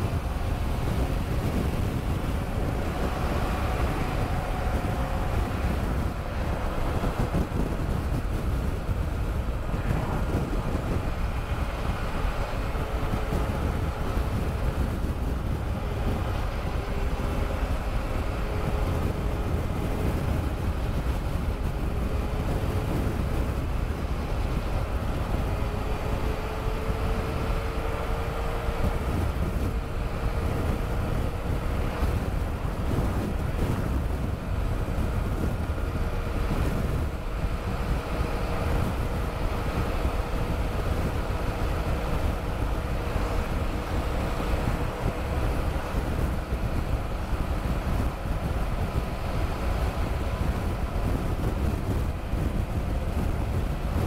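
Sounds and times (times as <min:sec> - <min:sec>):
motorcycle engine cruising: 0:00.0 - 0:54.0
wind rushing over microphone: 0:00.0 - 0:54.0.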